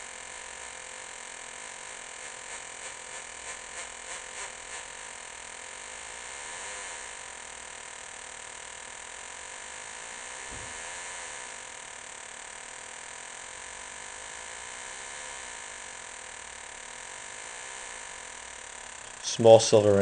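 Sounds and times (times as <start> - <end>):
metal detector buzzing tone: 1.6 - 20.0.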